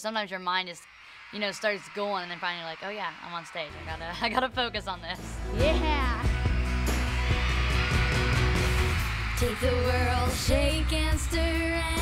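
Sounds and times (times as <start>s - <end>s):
pop-rock band playing: 5.2s - 12.0s.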